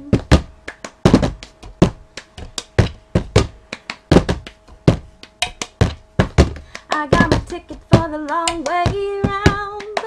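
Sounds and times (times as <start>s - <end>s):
hand claps: 0.0s - 10.0s.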